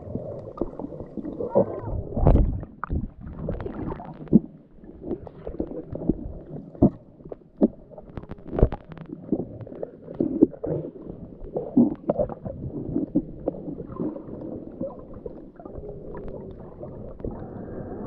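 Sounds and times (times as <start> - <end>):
underwater gurgling and bubbling: 0.0 - 18.0.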